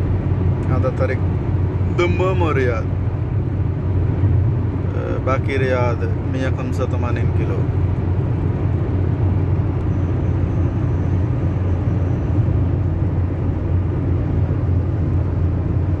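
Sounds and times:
road and engine rumble in car: 0:00.0 - 0:16.0.

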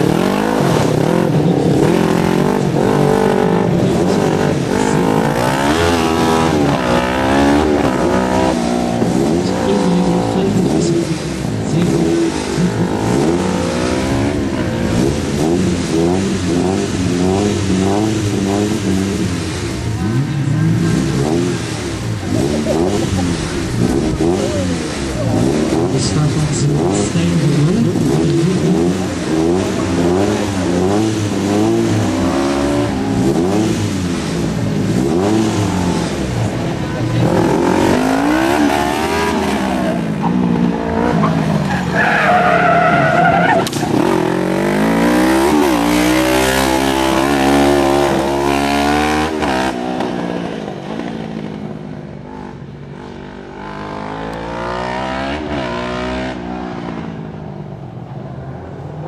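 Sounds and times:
car engine revving: 0:00.0 - 0:59.0
tire squeal: 0:37.2 - 0:44.2.

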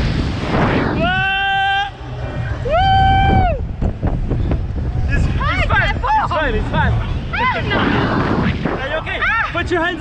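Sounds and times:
wind buffeting microphone: 0:02.3 - 0:10.0.

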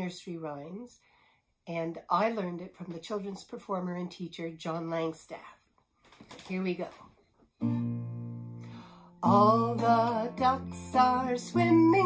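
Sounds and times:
acoustic guitar chord strummed: 0:07.6 - 0:12.0.

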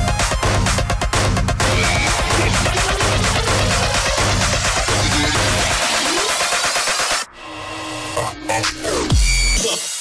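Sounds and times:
electronic house music: 0:00.0 - 0:10.0
rising synth sweep: 0:01.6 - 0:08.6.

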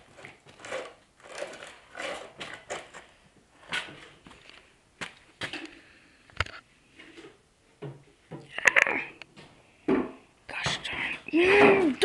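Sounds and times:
person whispering: 0:10.5 - 0:12.0.

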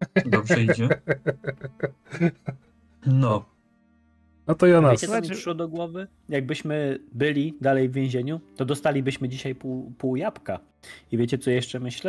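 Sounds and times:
man laughing: 0:00.0 - 0:02.7.

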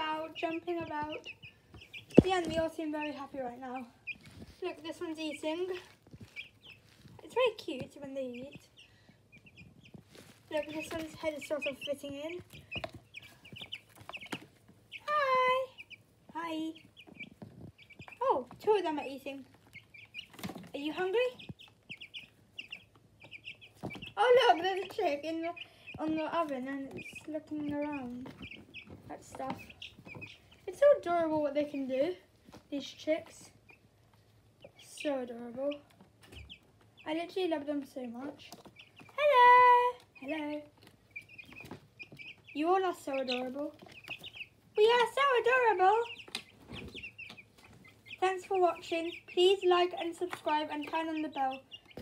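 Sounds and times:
chicks peeping: 0:00.0 - 0:52.0.

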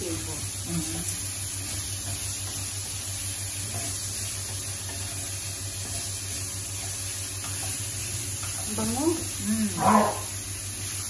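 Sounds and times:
food sizzling in a wok: 0:00.0 - 0:11.0.

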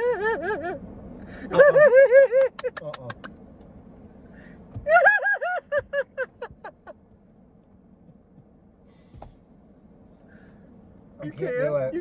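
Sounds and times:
man laughing hard: 0:00.0 - 0:00.8, 0:01.4 - 0:02.8, 0:04.9 - 0:06.9.

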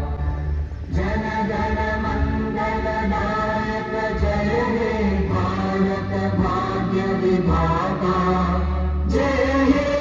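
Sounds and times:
steady low drone: 0:00.0 - 0:10.0
group chant-like singing: 0:00.9 - 0:10.0.

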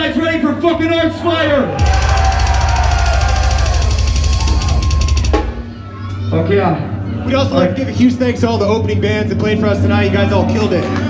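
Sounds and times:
very fast drumming: 0:01.8 - 0:05.7.

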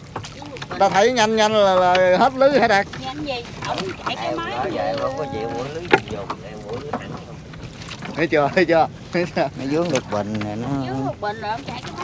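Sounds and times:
fishing net hauled over boat: 0:00.0 - 0:12.0
water splashing and dripping: 0:00.0 - 0:12.0.

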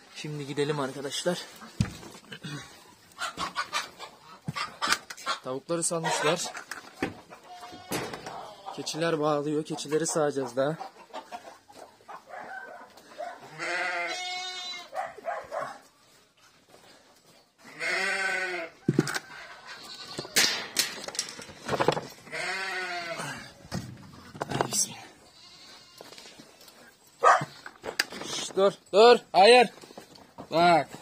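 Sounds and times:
goats bleating: 0:07.3 - 0:08.9, 0:13.4 - 0:15.0, 0:17.6 - 0:18.8, 0:19.5 - 0:20.4, 0:22.2 - 0:23.6, 0:25.2 - 0:26.6.

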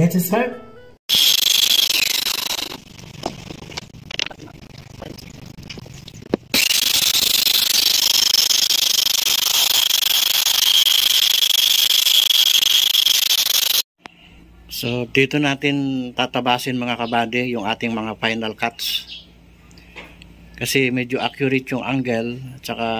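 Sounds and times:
circular saw whining: 0:01.1 - 0:02.8, 0:06.5 - 0:13.8.

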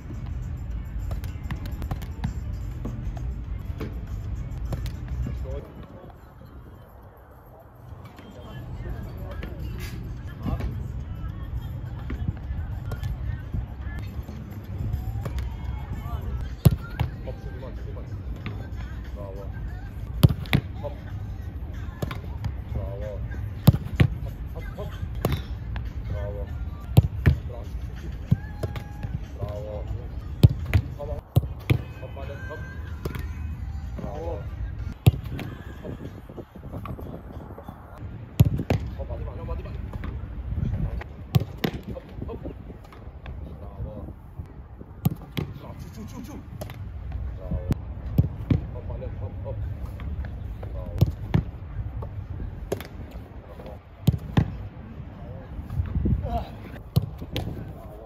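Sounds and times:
football thuds: 0:20.1 - 0:20.9, 0:23.6 - 0:24.3, 0:30.4 - 0:32.0, 0:34.9 - 0:37.2, 0:38.3 - 0:43.8, 0:45.0 - 0:45.8, 0:46.5 - 0:48.9, 0:49.7 - 0:54.6, 0:55.7 - 0:58.0.

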